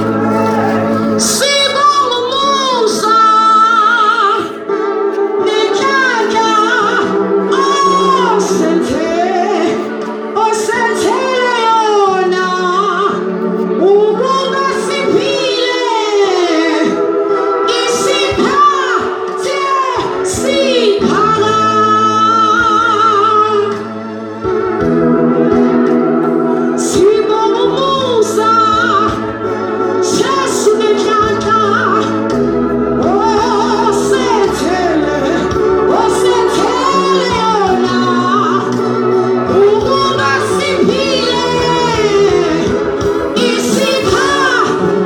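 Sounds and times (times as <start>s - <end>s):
low backing notes: 0.0s - 45.0s
woman singing: 0.1s - 23.8s, 26.8s - 45.0s.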